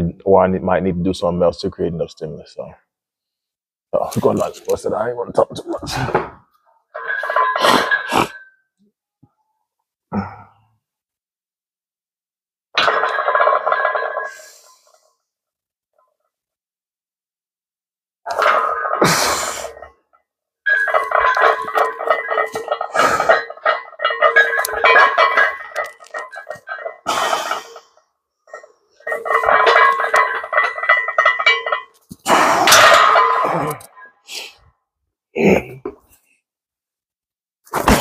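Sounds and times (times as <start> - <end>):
man grunting: 10.2 - 10.5.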